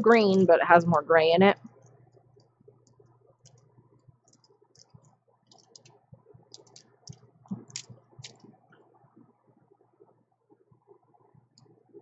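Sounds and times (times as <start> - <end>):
plastic swatch sticks clicking: 4.3 - 8.5.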